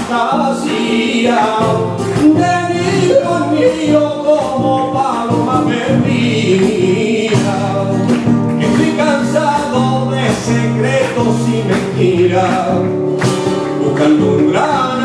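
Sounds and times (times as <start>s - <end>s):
hand clapping: 0.0s - 15.0s
spanish guitar: 0.0s - 15.0s.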